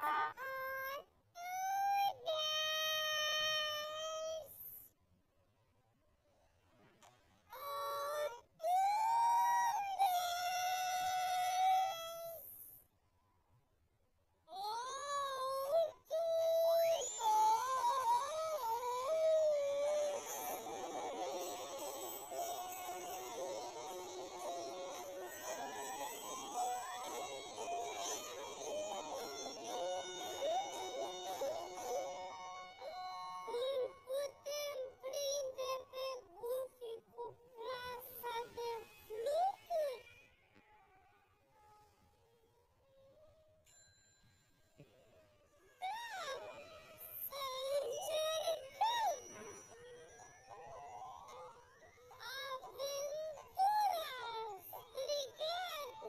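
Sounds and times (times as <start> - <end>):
warbling pitch-bent voices: 0.0 - 0.3.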